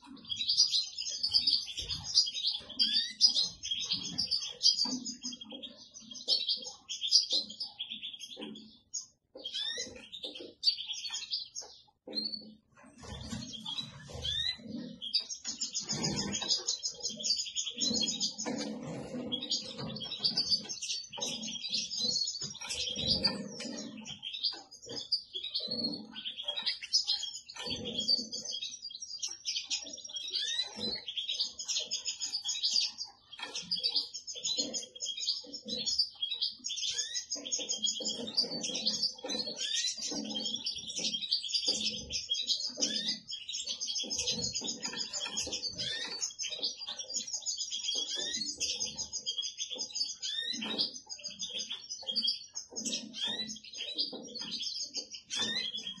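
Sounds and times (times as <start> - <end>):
goldfinch twittering song: 0.0 - 56.0.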